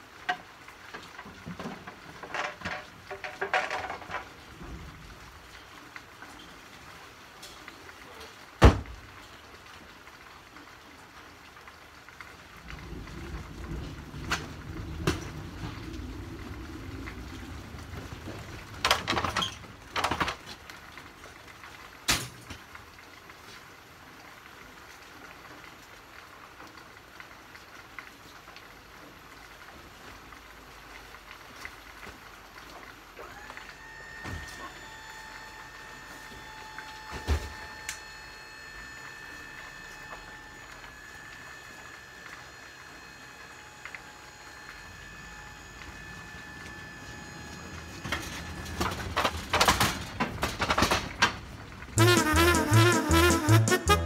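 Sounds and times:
steady rain falling: 0.0s - 54.0s
clattering and knocking: 1.4s - 4.4s.

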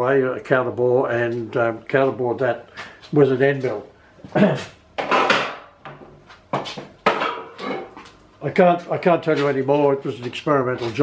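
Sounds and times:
man coughing: 4.3s - 4.7s.

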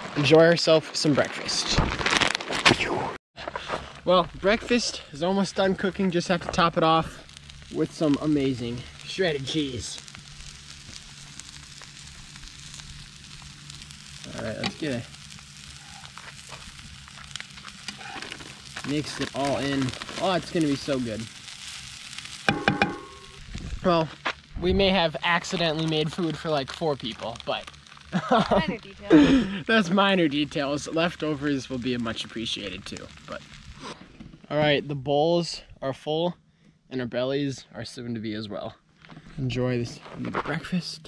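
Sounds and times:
plastic pouch crinkling: 1.4s - 2.7s, 6.5s - 22.5s, 25.2s - 29.2s
food sizzling: 4.0s - 34.0s
spatula knocking on frying pan: 22.5s - 23.1s.

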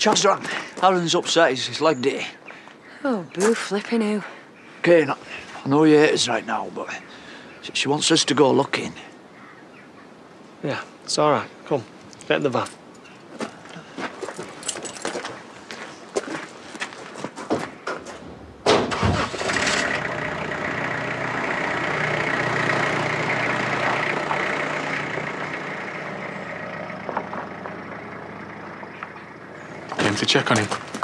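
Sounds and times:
van engine starting and running: 18.7s - 31.0s.

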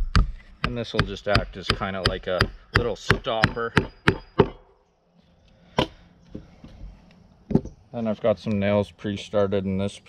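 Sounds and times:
hammer hitting nail in wood: 0.0s - 4.6s, 5.8s - 6.0s.

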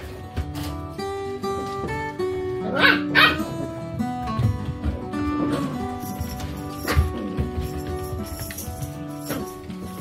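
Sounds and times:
background music: 0.0s - 10.0s
puppy barking: 2.6s - 3.7s.

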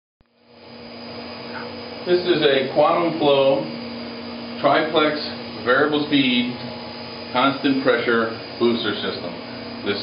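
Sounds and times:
machinery hum and hiss: 0.3s - 10.0s.

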